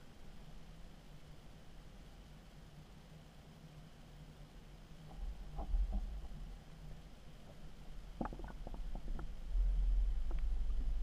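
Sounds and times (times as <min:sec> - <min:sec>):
muffled underwater rumble: 0:05.0 - 0:11.0
small clicks and pops: 0:08.2 - 0:09.4.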